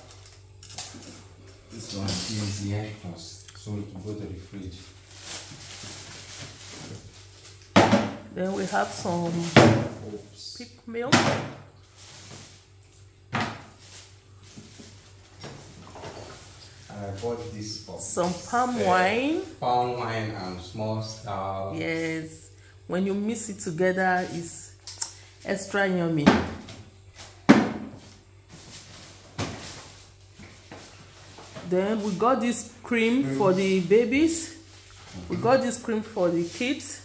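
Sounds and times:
plastic bags rustling: 0:00.0 - 0:01.8, 0:04.6 - 0:07.7, 0:11.8 - 0:19.6, 0:28.0 - 0:37.0
items knocking on wooden table: 0:07.7 - 0:08.2, 0:13.3 - 0:13.7.

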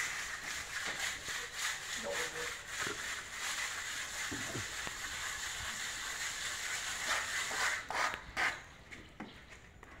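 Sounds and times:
trowels scraping wet cement: 0:00.0 - 0:08.8.

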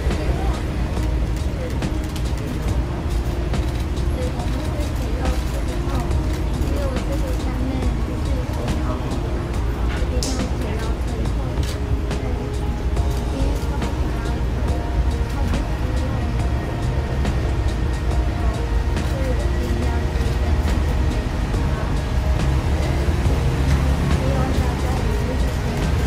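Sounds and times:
music: 0:00.0 - 0:26.0.

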